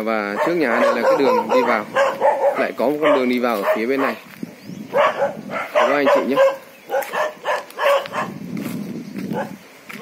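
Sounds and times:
dog barking: 0.3s - 4.3s, 4.9s - 8.4s, 9.3s - 9.6s.

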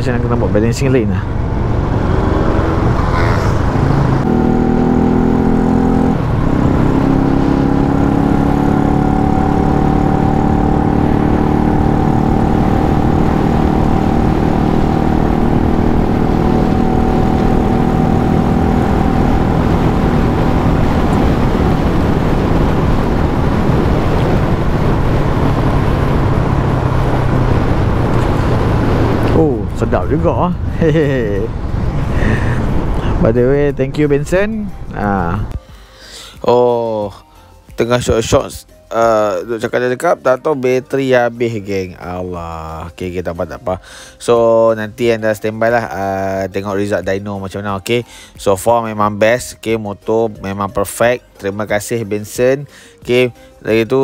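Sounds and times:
wind and road noise: 0.0s - 54.0s.

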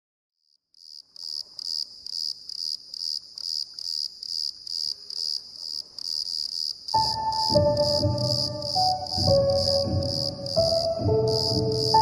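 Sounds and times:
cricket chirping: 0.4s - 12.0s.

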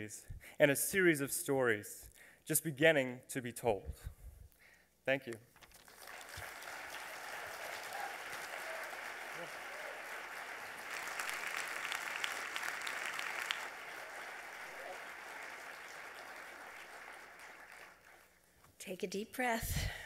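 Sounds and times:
audience applauding: 5.6s - 18.5s.

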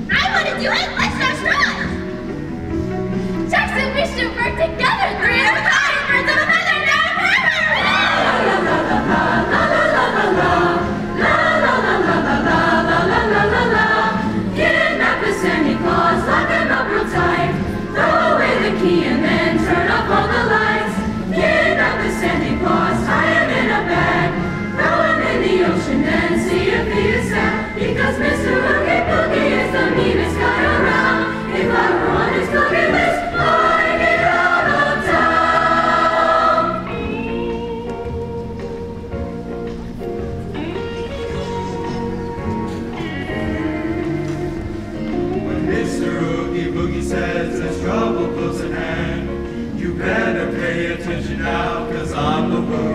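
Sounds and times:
choir singing in parts: 5.5s - 38.4s, 41.3s - 52.9s.

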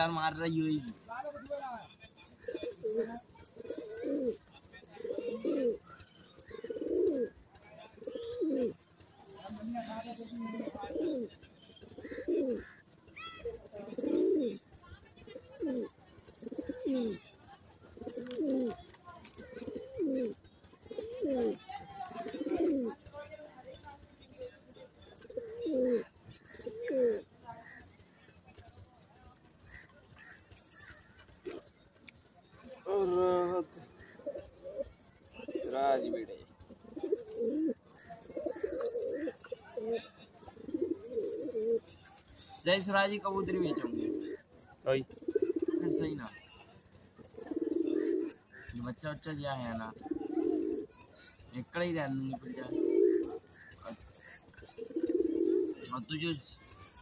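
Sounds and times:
pigeons cooing: 0.0s - 28.8s, 29.4s - 57.0s.

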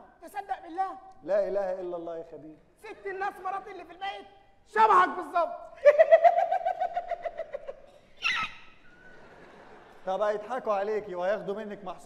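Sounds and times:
person's high trilled call: 8.2s - 8.8s.

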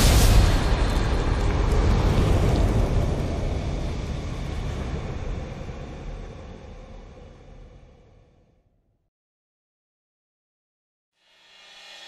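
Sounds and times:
deep rumbling sound effect: 0.0s - 8.8s.

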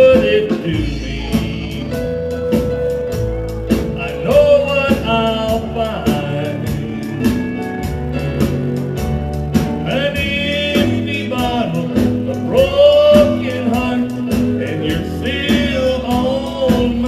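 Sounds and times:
bending lead melody: 0.0s - 17.0s
country band playing: 0.0s - 17.0s
drums with cymbals: 0.0s - 17.0s.

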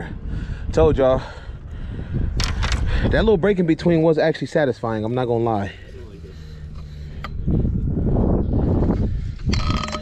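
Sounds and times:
rough rumble: 5.7s - 10.0s.

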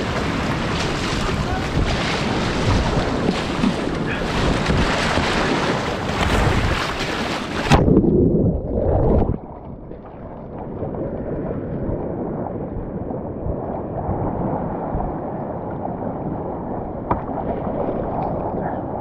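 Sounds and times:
rushing whitewater: 0.0s - 7.8s
paddle splashes: 0.0s - 8.2s
wind buffeting microphone: 0.0s - 19.0s.

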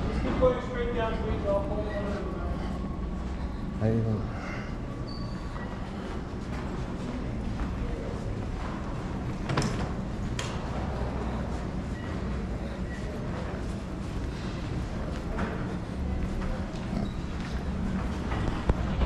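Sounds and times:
low rumble of terminal background: 0.0s - 19.0s.

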